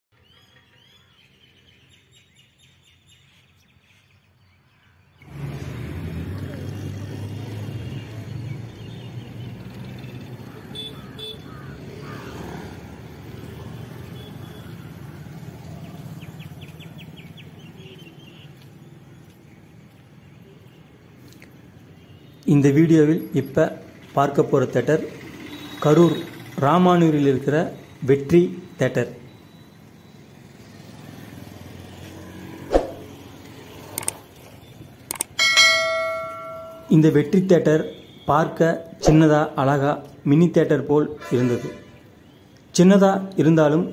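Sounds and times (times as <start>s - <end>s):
road noise: 0.1s - 43.9s
street traffic rumble: 0.1s - 43.9s
clicks: 33.9s - 34.2s, 35.0s - 35.6s
bright bell chime: 35.4s - 37.1s.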